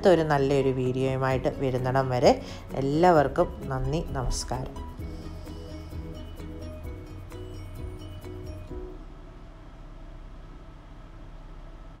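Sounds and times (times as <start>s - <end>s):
steady low rumble with hiss: 0.0s - 12.0s.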